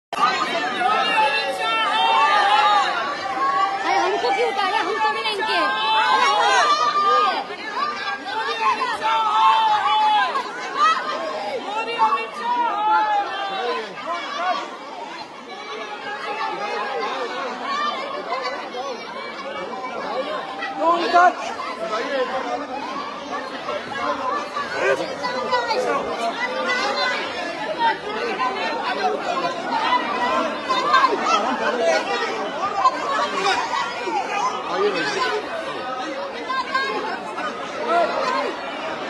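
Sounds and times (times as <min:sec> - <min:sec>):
people shouting and talking: 0:00.1 - 0:39.0.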